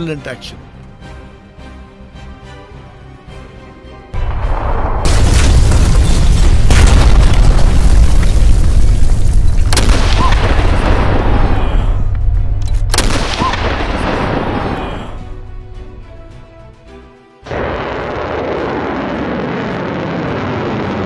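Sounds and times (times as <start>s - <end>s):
sharp explosion blasts: 4.2s - 12.1s, 12.9s - 15.1s
deep explosion rumble with crackle: 4.2s - 15.0s, 17.5s - 21.0s.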